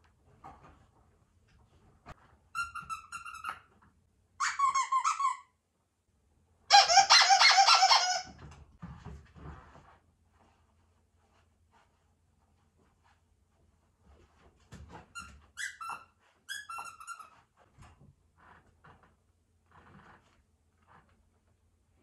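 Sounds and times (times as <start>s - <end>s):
squeaky dog toy squeaking: 2.5s - 3.7s, 4.4s - 5.6s, 6.7s - 8.4s, 15.1s - 17.5s.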